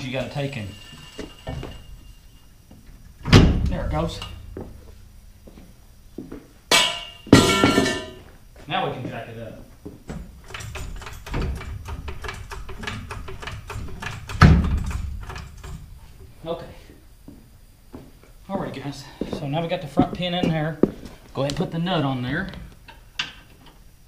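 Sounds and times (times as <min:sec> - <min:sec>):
metal knocks and clanks: 0:00.0 - 0:08.3, 0:10.1 - 0:16.0
heavy thud: 0:03.2 - 0:08.2.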